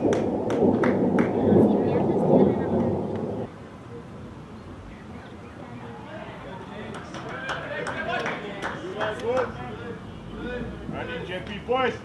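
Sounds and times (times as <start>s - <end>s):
wind buffeting microphone: 0.0s - 3.6s.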